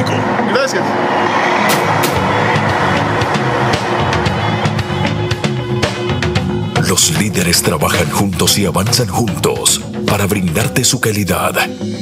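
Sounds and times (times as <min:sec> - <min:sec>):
sharp percussive hits: 0:01.6 - 0:06.2.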